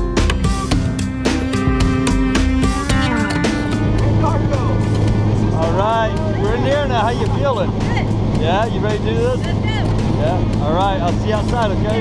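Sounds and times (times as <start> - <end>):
strummed guitar music: 0.0 - 7.6
plane engine drone: 0.7 - 9.0
indistinct voices: 2.7 - 12.0.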